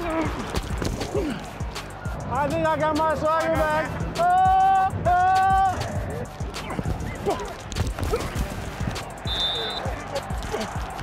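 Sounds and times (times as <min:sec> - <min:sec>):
people shouting: 0:00.0 - 0:02.2, 0:03.4 - 0:11.0
background music: 0:00.0 - 0:11.0.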